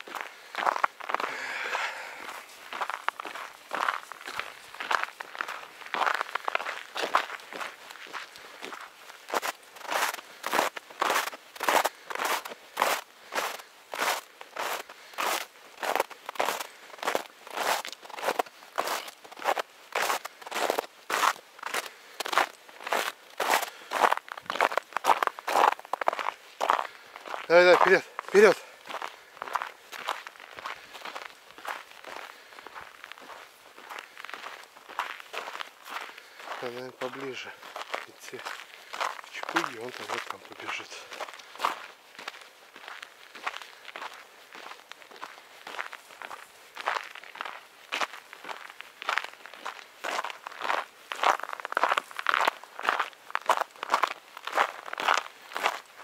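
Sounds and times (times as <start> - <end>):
footsteps crunching in snow: 0.0 - 56.0.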